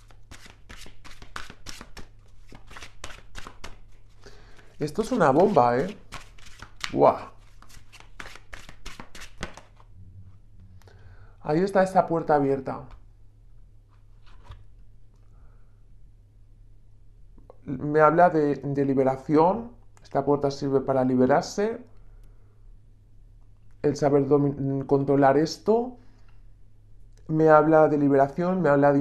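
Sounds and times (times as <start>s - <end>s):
cards being shuffled: 0.0s - 9.9s, 13.9s - 14.9s
steady low hum: 9.8s - 29.0s.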